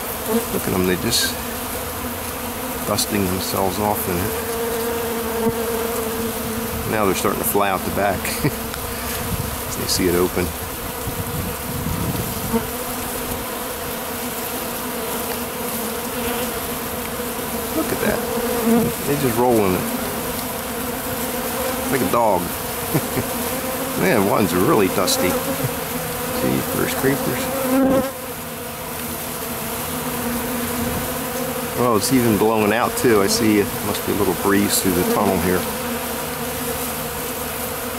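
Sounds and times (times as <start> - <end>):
honeybees buzzing: 0.0 - 37.9.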